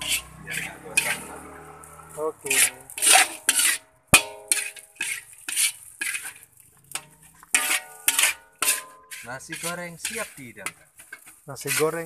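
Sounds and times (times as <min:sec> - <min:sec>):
metal spatula scraping a wok: 0:00.0 - 0:12.0
sharp metallic clang: 0:03.0 - 0:04.8.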